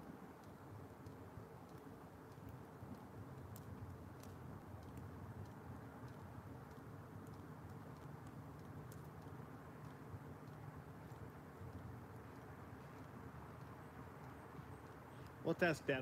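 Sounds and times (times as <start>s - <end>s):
low steady rumble: 0.0s - 16.0s
wood fire crackling: 0.0s - 16.0s.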